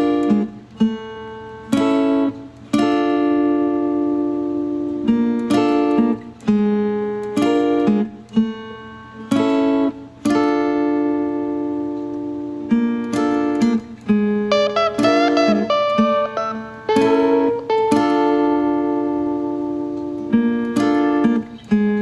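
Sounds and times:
electric guitar fingerpicked chords: 0.0 - 22.0.

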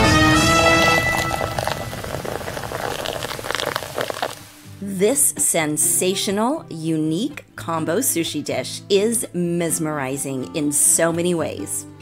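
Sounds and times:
wine pouring into glass: 0.0 - 4.7
bubbles fizzing: 0.0 - 4.8.

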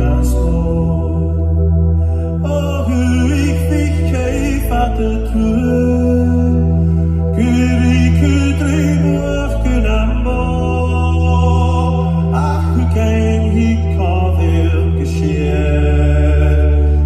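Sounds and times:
low bass notes: 0.0 - 17.0
man singing: 0.0 - 17.0.

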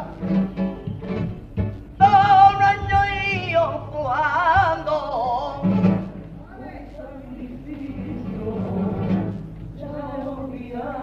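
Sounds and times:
guitars strumming and plucking: 0.0 - 6.5, 7.9 - 9.8
choir singing: 6.7 - 11.0.

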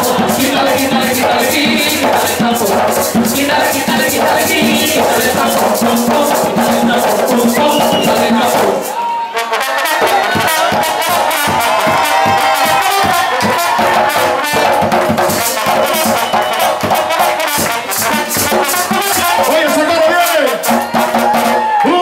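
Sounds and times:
hand drums rhythm: 0.0 - 9.0, 10.0 - 21.8
trumpet melody: 0.0 - 22.0.

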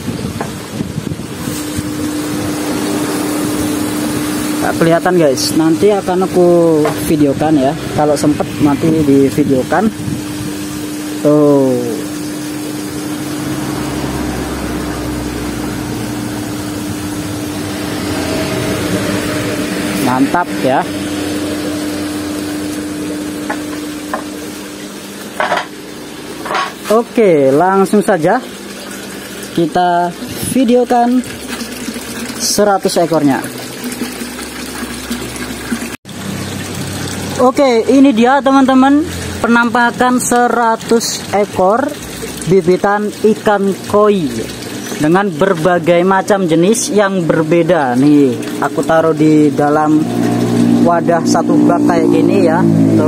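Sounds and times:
pump humming: 0.0 - 53.0
water bubbling: 1.2 - 26.4, 28.2 - 53.0.

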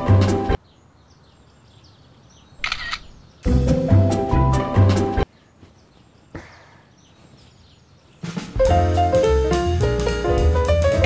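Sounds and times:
camera shutter click: 2.6 - 3.2.

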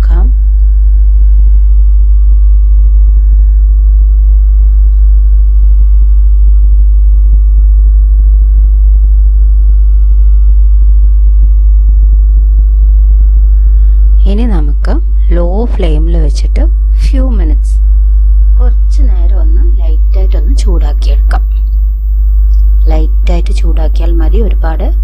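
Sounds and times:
loud steady low hum: 0.0 - 25.0
faint steady high tones: 14.2 - 21.8, 22.5 - 25.0.

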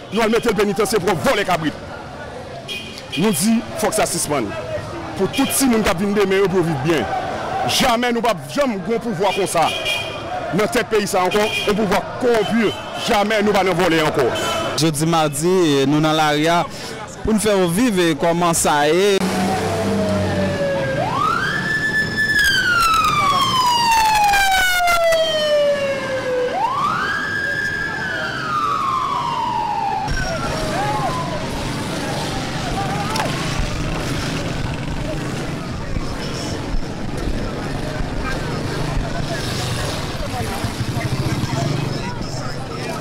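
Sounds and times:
street noise: 0.0 - 43.0
siren wailing: 19.2 - 33.9
distant siren wail: 19.2 - 34.4.

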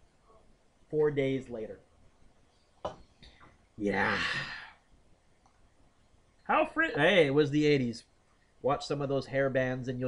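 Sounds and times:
man speaking: 3.8 - 4.7
man sighing: 3.9 - 4.8.

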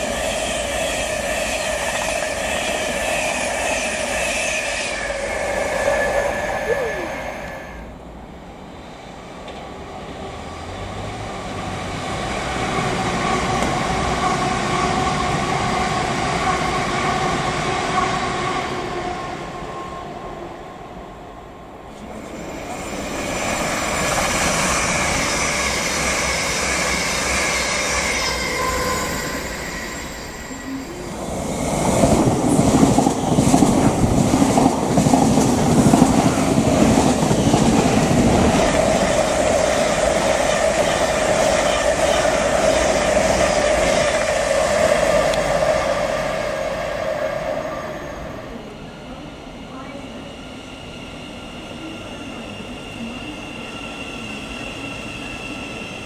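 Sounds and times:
train rushing past: 0.0 - 56.0.

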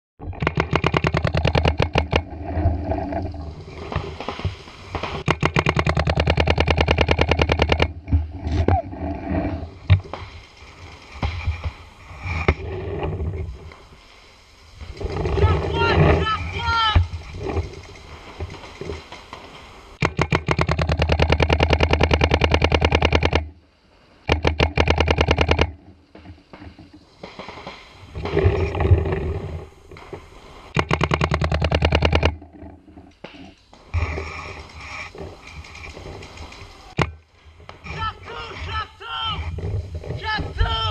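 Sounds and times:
paintball marker rapid firing: 0.4 - 2.2, 4.2 - 7.9, 20.0 - 23.4, 24.3 - 25.7, 30.8 - 32.4.

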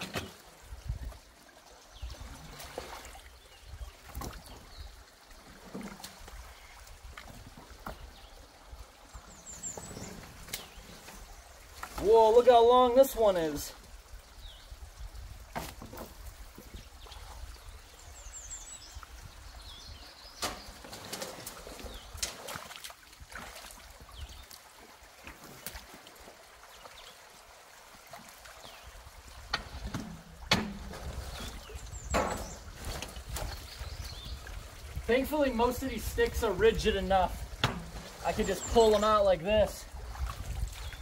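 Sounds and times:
splashes and knocks of sticks: 0.0 - 1.3, 2.2 - 8.2, 9.7 - 12.5, 15.4 - 17.5, 20.3 - 34.7, 37.4 - 39.2, 39.9 - 41.0
water trickling through culvert: 0.0 - 41.0.

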